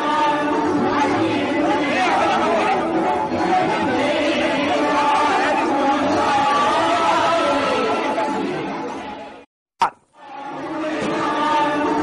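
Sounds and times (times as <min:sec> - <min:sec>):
crowd babble: 0:00.0 - 0:09.5, 0:10.3 - 0:12.0.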